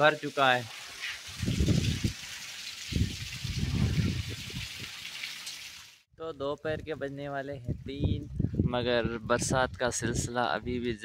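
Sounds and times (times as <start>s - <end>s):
wind buffeting microphone: 1.2s - 2.3s, 2.9s - 5.0s, 6.6s - 11.0s.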